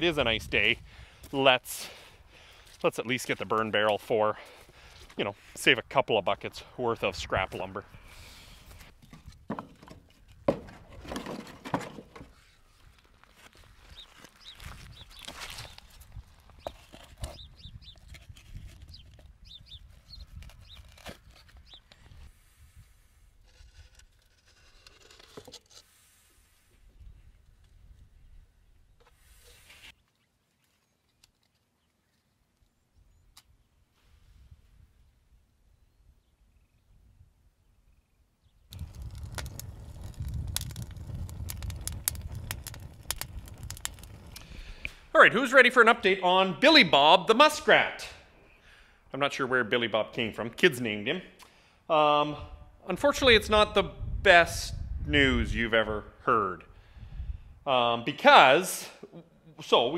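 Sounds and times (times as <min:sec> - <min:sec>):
wind buffeting microphone: 0:00.0 - 0:01.2, 0:13.9 - 0:15.2, 0:38.7 - 0:45.0, 0:52.4 - 0:56.1, 0:56.8 - 0:57.6
wood pieces knocking and clattering: 0:09.0 - 0:12.4.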